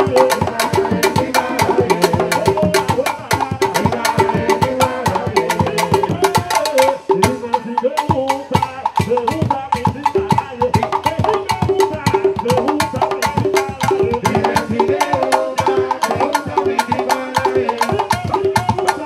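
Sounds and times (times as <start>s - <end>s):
conga drums: 0.0s - 19.0s.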